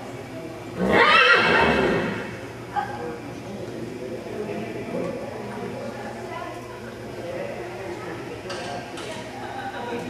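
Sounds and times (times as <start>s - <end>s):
horse whinnying: 0.8s - 2.4s.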